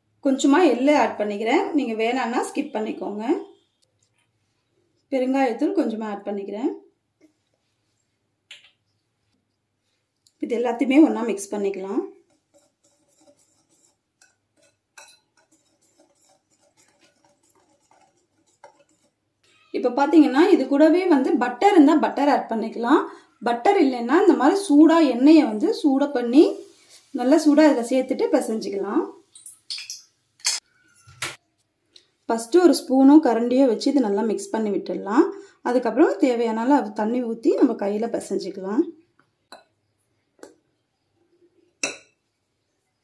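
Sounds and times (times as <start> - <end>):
whisk wires tapping glass bowl: 12.2 - 19.2.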